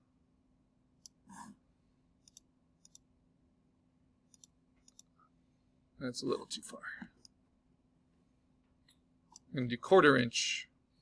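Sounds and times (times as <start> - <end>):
faint low hum: 0.0 - 11.0
computer mouse clicks: 1.0 - 1.2, 2.2 - 3.1, 4.3 - 5.1.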